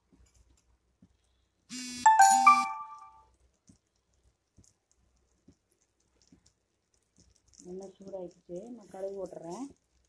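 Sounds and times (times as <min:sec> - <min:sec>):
buzzy hiss: 0:01.7 - 0:02.6
two-note electronic chime: 0:02.1 - 0:03.2.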